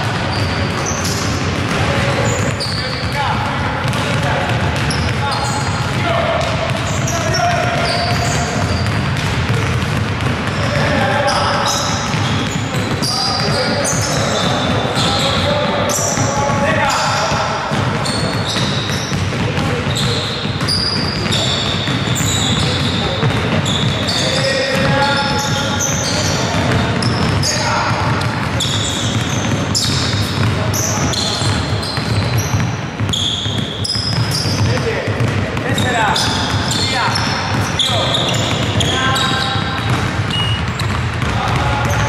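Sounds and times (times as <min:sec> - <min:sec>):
basketballs dribbling on hardwood: 0:00.0 - 0:42.0
voices: 0:00.3 - 0:42.0.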